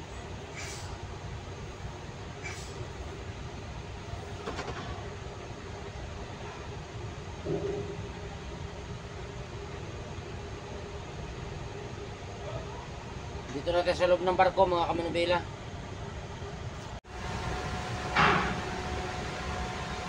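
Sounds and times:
ferry engine low rumble: 0.0 - 14.2, 14.8 - 20.0.

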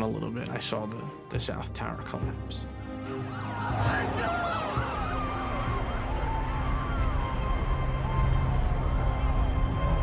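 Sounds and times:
emergency sirens wailing: 4.0 - 10.0.

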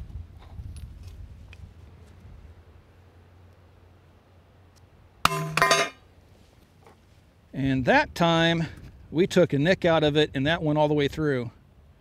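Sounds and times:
metallic ring of steel plate: 5.3 - 6.0.

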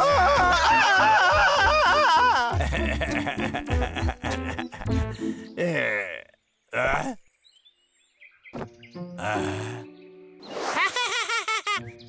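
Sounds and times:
person laughing: 0.0 - 6.2, 10.7 - 11.8
faint forest ambience: 4.3 - 12.0
high bird chirps: 7.3 - 9.2.

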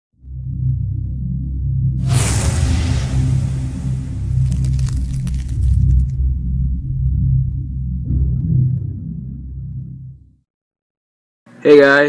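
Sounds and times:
deep low drone: 0.2 - 10.4.

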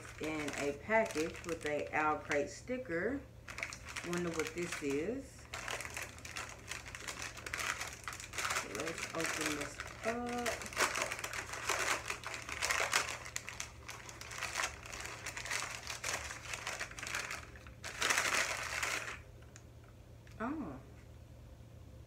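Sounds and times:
wrapper crinkling and rustling: 0.0 - 2.8, 3.4 - 19.6.

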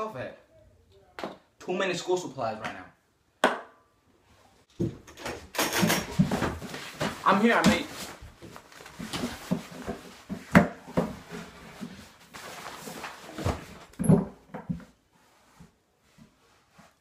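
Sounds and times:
backpack rustling and knocking: 5.7 - 12.0.

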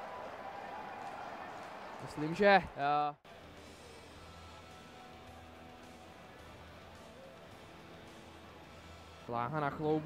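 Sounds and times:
ice hockey arena background noise: 0.0 - 10.0.

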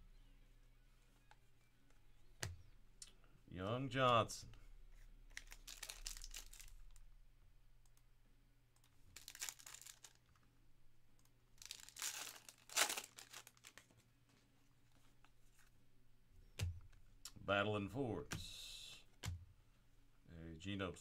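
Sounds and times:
foil wrappers tearing and crinkling: 5.4 - 6.7, 9.2 - 10.2, 11.6 - 13.8.

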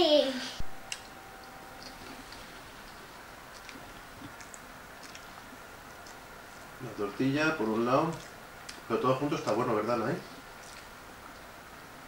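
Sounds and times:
low room hiss: 0.0 - 12.0
child chewing: 0.8 - 12.0.

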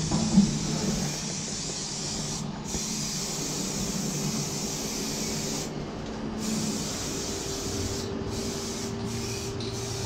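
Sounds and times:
steady low hum: 0.0 - 10.0
aerosol spray can hissing: 1.0 - 5.7, 6.4 - 10.0.

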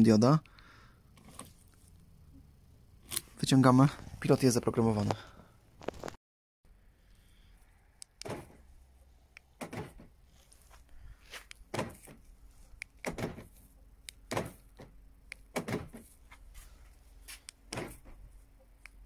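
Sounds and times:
car door locks clunking: 8.2 - 8.6, 9.6 - 10.2, 11.7 - 12.2, 13.0 - 13.5, 14.1 - 16.1, 17.7 - 18.2.

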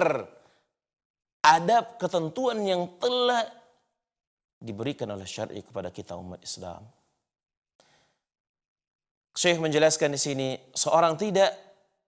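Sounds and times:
faint short breath: 7.8 - 8.3.

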